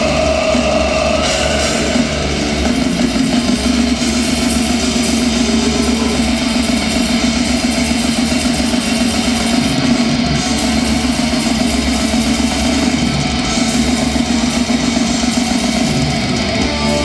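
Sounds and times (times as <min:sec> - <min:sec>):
black metal band playing live: 0:00.0 - 0:17.0
distorted electric guitars: 0:00.0 - 0:17.0
drum kit: 0:00.0 - 0:17.0.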